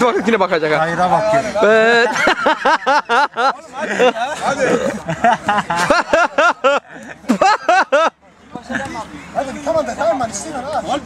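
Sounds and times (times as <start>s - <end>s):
crowd murmur: 1.0s - 11.0s.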